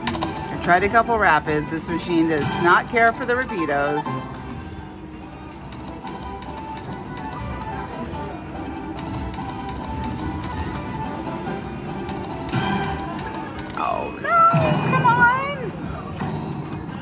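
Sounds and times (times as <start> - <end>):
slot machine game music: 0.0 - 17.0.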